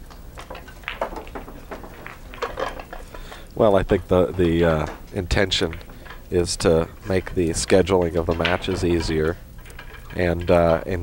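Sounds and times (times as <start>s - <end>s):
billiard balls clicking: 0.0s - 11.0s.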